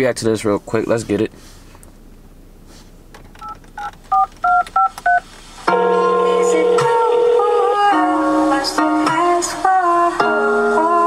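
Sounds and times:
telephone keypad dial beeps: 3.4s - 5.2s.

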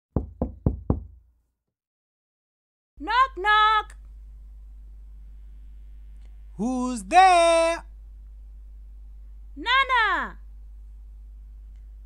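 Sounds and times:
knocking on door: 0.1s - 1.2s.

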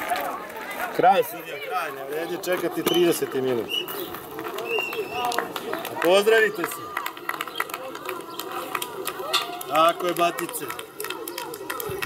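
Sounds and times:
voices calling out: 0.0s - 12.0s.

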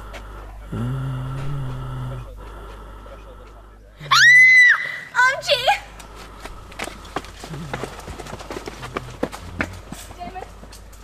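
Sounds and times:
woman shrieking: 4.1s - 5.3s.

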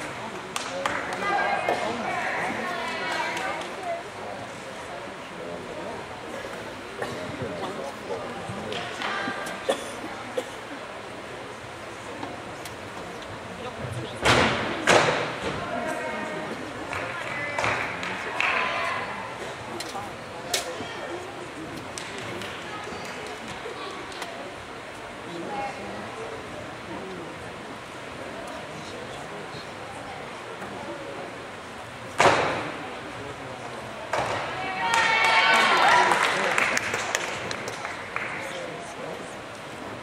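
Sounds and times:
crowd chatter echoing: 0.0s - 40.0s.

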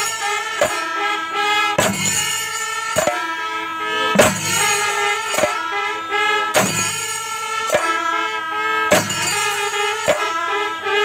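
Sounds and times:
horn-like wind instrument: 0.0s - 11.0s
drums playing: 1.7s - 3.4s, 4.0s - 5.7s, 6.5s - 8.0s, 8.9s - 10.4s.

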